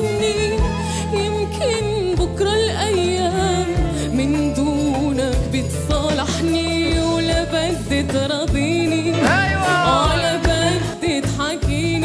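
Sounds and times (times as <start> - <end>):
sustained instrumental accompaniment: 0.0 - 12.0
woman singing: 0.0 - 12.0.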